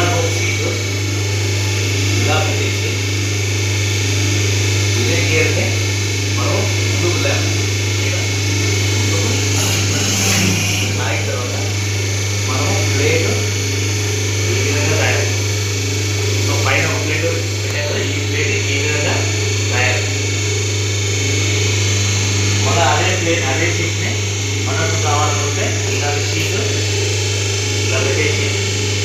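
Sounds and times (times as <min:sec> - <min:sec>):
machine humming: 0:00.0 - 0:29.0
hydraulic press hissing: 0:08.0 - 0:12.0.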